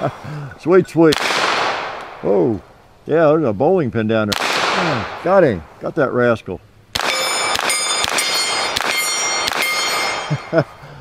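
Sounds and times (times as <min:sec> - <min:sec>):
pistol shots: 0:01.1 - 0:02.2, 0:04.3 - 0:05.3, 0:06.9 - 0:10.3
steel targets ringing: 0:07.0 - 0:10.8.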